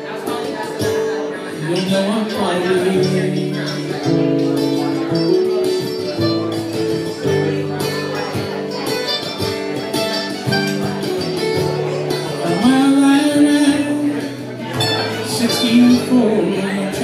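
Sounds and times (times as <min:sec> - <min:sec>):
acoustic guitar strumming: 0:00.0 - 0:17.0
plucked string melody: 0:00.0 - 0:17.0.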